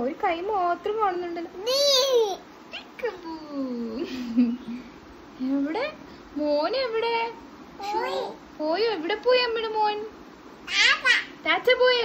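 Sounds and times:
toddler calling out: 0:01.6 - 0:02.9, 0:10.7 - 0:11.4.

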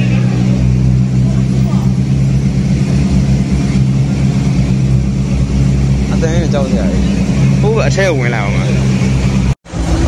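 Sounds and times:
sports car engines idling: 0:00.0 - 0:10.0.

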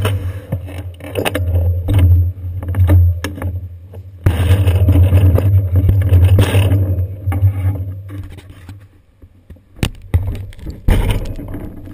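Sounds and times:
scrapes and knocks: 0:00.0 - 0:09.0, 0:09.8 - 0:11.9
bicycle rumbling and rattling: 0:00.0 - 0:11.9.

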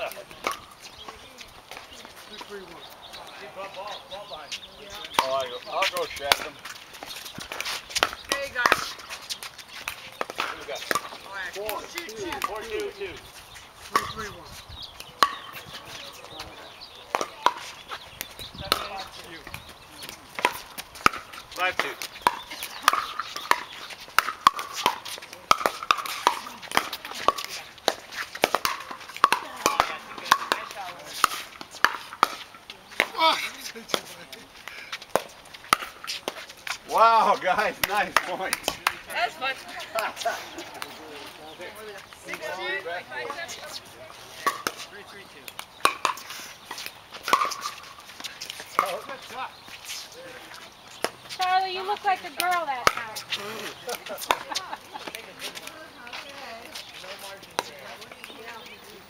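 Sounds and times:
paddles hitting plastic ball: 0:05.1 - 0:13.0, 0:15.0 - 0:41.0, 0:44.4 - 0:56.0.

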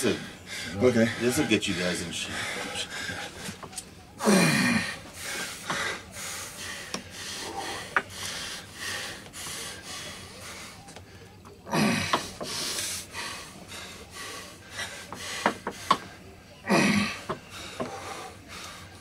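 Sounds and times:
hard breathing: 0:00.0 - 0:19.0
loud grunt: 0:04.2 - 0:05.0, 0:11.7 - 0:12.3, 0:16.6 - 0:17.3.

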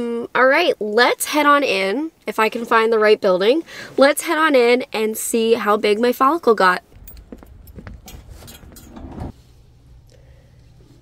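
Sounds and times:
low indoor room hum: 0:00.0 - 0:11.0
glass door opening: 0:07.2 - 0:09.4.

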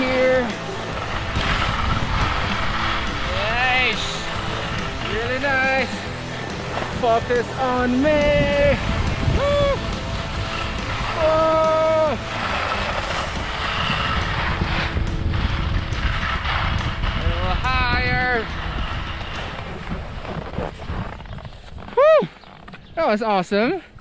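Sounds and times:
wind buffeting microphone: 0:00.0 - 0:23.2
skis scraping over snow: 0:00.0 - 0:24.0
person whooping: 0:09.2 - 0:09.9, 0:11.2 - 0:12.2, 0:21.9 - 0:22.4.

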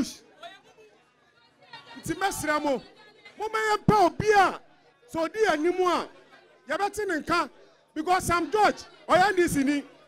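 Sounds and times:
faint chatter: 0:00.0 - 0:10.0
man speaking over microphone: 0:02.0 - 0:02.8, 0:03.4 - 0:10.0.

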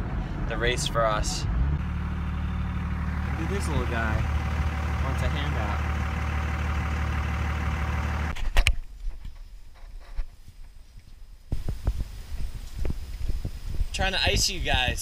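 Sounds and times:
car engine idling: 0:00.0 - 0:08.4.

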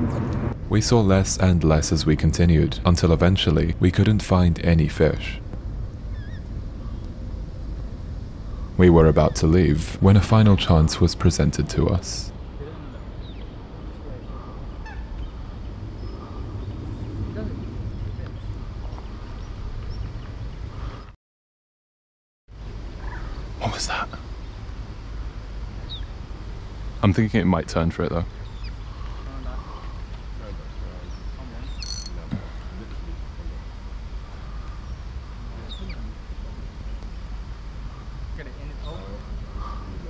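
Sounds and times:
steady low rumble: 0:00.0 - 0:21.1, 0:22.5 - 0:40.0
faint indistinct voices: 0:28.2 - 0:34.8.

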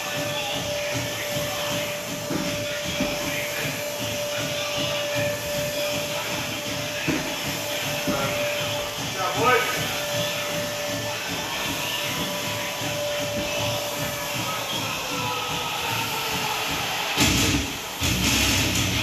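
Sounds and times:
constant whine: 0:00.0 - 0:19.0
gym fan whooshing hum: 0:00.0 - 0:19.0
dull thumps: 0:00.1 - 0:17.7.

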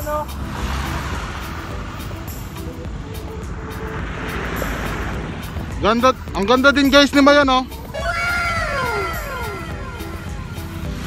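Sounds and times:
falling voice-like wow effect: 0:08.0 - 0:10.3.

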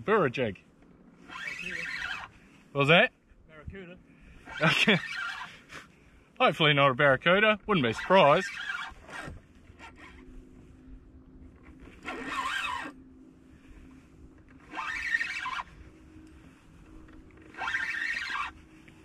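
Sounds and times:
fishing reel whirring: 0:01.2 - 0:02.4, 0:04.4 - 0:05.7, 0:07.9 - 0:10.2, 0:11.6 - 0:19.0.

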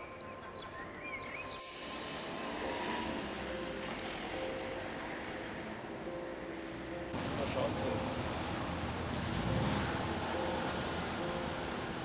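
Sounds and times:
bird chirping: 0:00.0 - 0:01.7
passing vehicle rushing: 0:01.6 - 0:06.0, 0:06.6 - 0:12.0.

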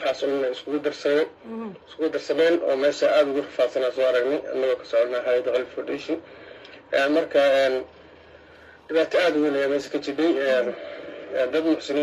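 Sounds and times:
woman speaking: 0:01.4 - 0:01.8.

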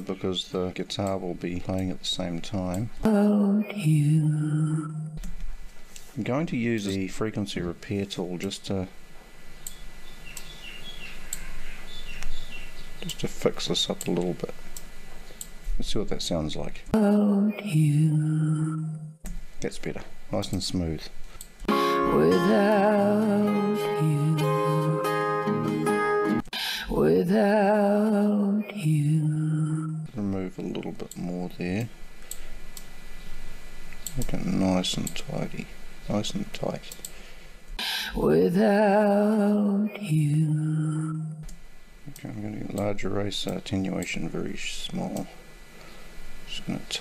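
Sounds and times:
steady low hum: 0:00.0 - 0:25.6, 0:26.5 - 0:47.0
bird chirping: 0:09.6 - 0:13.2.

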